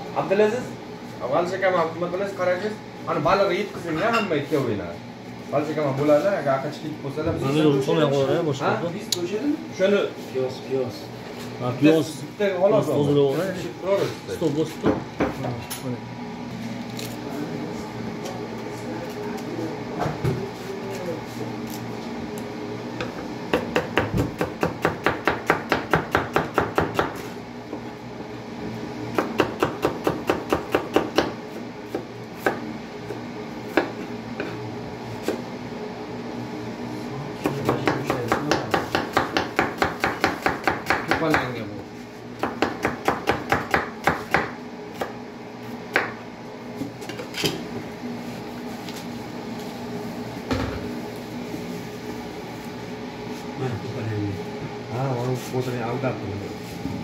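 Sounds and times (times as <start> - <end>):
knife chopping on wooden board: 14.8 - 15.5, 23.5 - 27.3, 29.1 - 32.6, 37.4 - 41.5, 42.4 - 45.2, 45.9 - 46.2.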